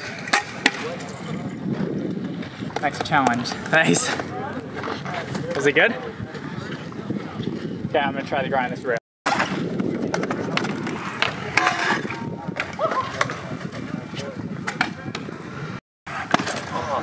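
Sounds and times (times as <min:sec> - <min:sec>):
scooter wheels rolling on concrete: 0:00.0 - 0:17.0.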